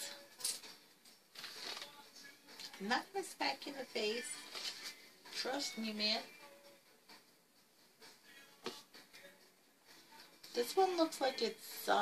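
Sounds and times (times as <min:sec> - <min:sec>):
cardboard record jacket rustling: 0:01.3 - 0:02.0, 0:04.4 - 0:05.1.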